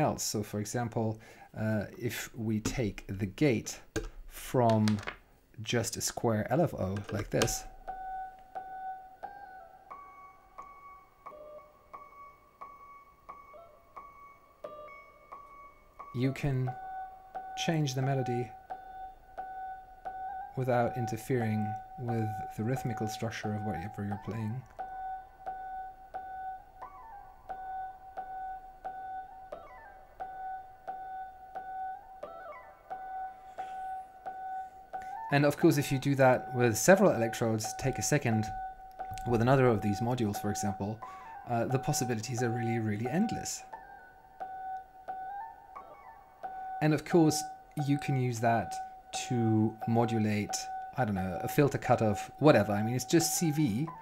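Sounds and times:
bell-like synthesizer notes: 7.7s - 54.0s.

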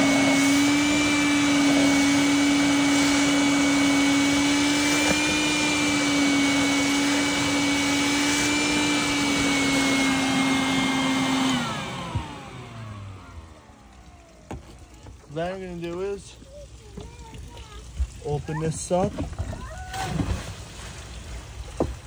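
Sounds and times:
shop vac motor whining: 0.0s - 15.1s.

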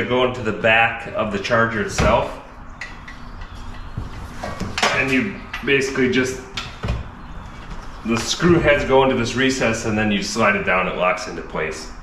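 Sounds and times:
light knocks and rubbing: 2.8s - 5.7s.

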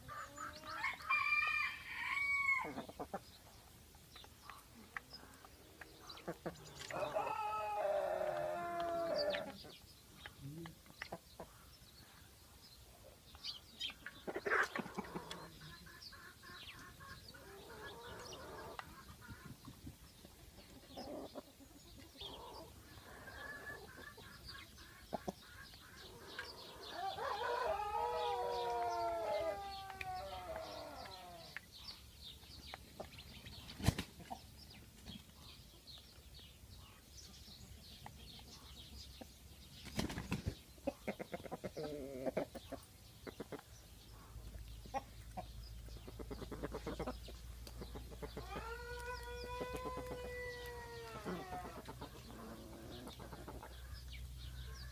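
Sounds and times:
hens clucking: 4.2s - 11.6s, 13.9s - 31.7s, 40.8s - 54.9s
rooster crowing: 6.9s - 9.4s, 26.9s - 31.0s.

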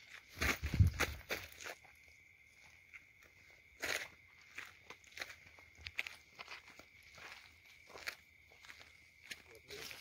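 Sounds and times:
footsteps on stony ground: 0.0s - 10.0s.

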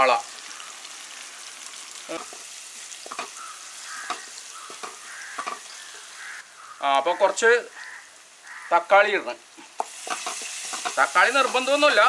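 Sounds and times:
onions sizzling in hot oil: 0.0s - 12.0s.

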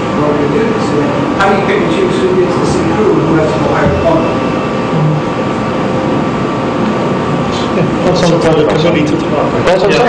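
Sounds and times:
room hum with faint tone: 0.0s - 10.0s.

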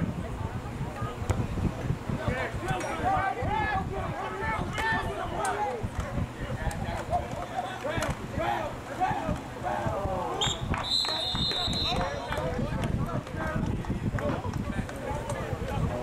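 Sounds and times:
players shouting: 2.2s - 5.9s, 6.5s - 13.7s
referee's whistle blasts: 10.4s - 12.3s.

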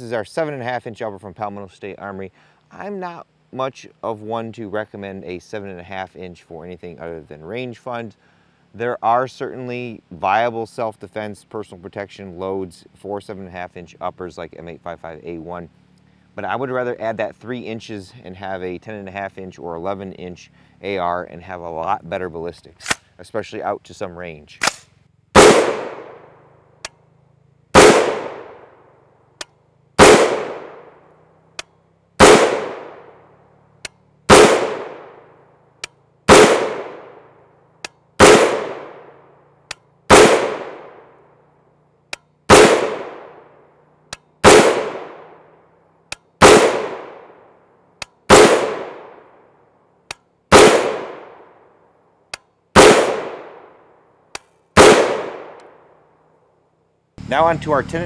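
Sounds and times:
rifle shots with ringing tail: 24.6s - 26.5s, 27.7s - 29.0s, 30.0s - 31.2s, 32.2s - 33.4s, 34.3s - 35.4s, 36.3s - 37.4s, 38.2s - 39.3s, 40.1s - 41.3s, 42.5s - 43.6s, 44.4s - 45.6s, 46.4s - 47.5s, 48.2s - 49.5s, 50.5s - 51.7s, 52.8s - 54.0s, 54.8s - 56.0s.

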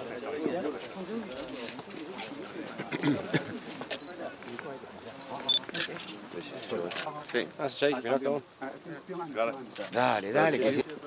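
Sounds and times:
people talking over each other: 0.0s - 11.0s.

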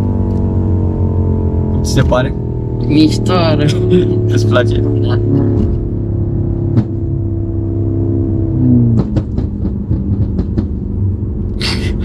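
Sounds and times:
car engine running: 0.0s - 12.0s
exhaust crackles and pops: 6.6s - 7.9s, 8.6s - 11.6s.

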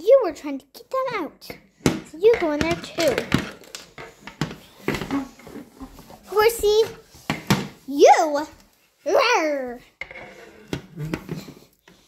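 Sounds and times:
child's voice: 0.0s - 3.4s, 6.2s - 7.0s, 7.8s - 9.9s
toy figures knocking on wooden floor: 1.5s - 5.5s, 6.8s - 7.8s.

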